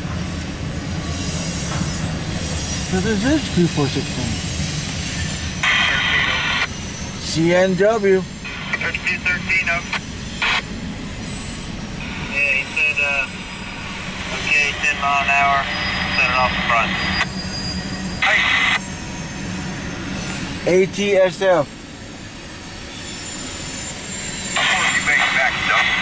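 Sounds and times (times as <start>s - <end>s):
freight train rumbling on rails: 0.0s - 26.0s.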